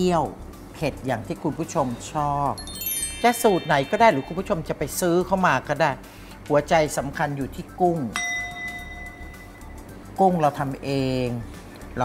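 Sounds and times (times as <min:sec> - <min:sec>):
bell-like chime: 0:02.6 - 0:05.4, 0:08.2 - 0:09.9.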